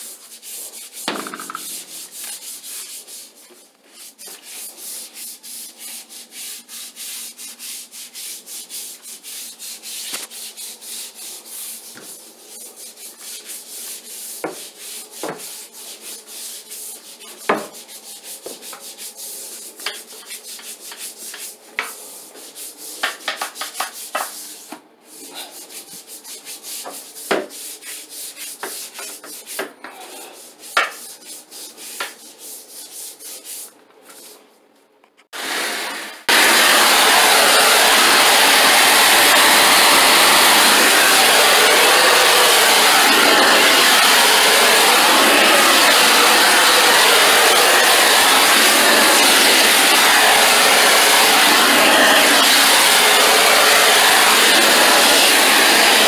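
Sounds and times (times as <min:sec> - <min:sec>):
scrub brush scrubbing tile floor: 0:00.0 - 0:24.6, 0:25.2 - 0:34.3, 0:35.4 - 0:56.0
cleaning machine rushing: 0:35.4 - 0:56.0.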